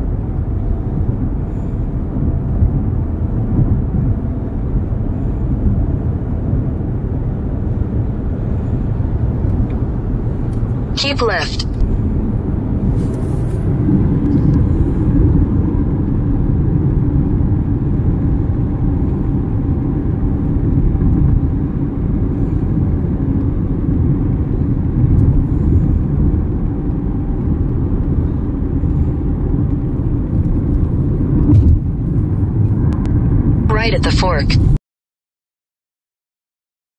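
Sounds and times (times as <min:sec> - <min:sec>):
car engine hum: 0:00.0 - 0:34.8
road and tyre noise: 0:00.0 - 0:34.8.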